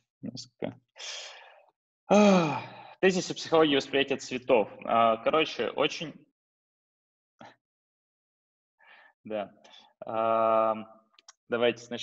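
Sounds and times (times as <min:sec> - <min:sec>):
man breathing in: 0:01.0 - 0:01.7, 0:08.8 - 0:09.9
man sighing: 0:02.1 - 0:02.9.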